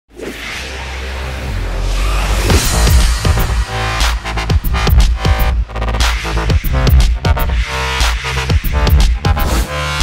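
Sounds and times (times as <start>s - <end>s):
electronic music intro: 0.1s - 10.0s
steady low bass: 0.7s - 10.0s.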